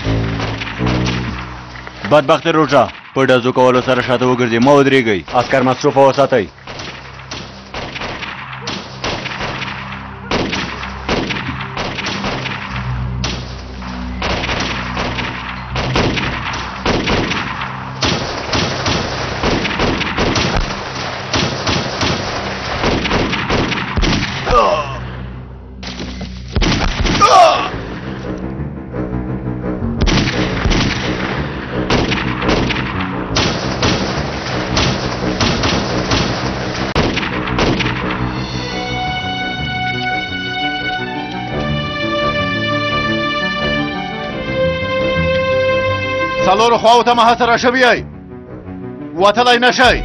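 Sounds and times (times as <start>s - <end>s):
echoing gunshots: 0.0s - 24.5s, 25.8s - 27.9s, 30.0s - 38.4s
dramatic background music: 0.0s - 50.0s
rapid rifle gunfire: 6.7s - 13.6s, 14.2s - 24.4s, 30.0s - 38.1s.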